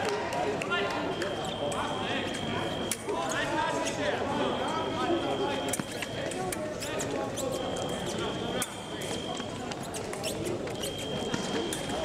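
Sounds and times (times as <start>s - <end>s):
shoe squeaks: 1.2s - 12.0s.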